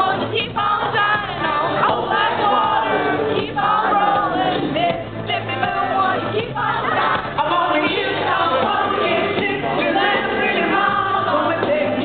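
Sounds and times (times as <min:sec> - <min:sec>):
pop-rock band through a pa: 0:00.0 - 0:12.0.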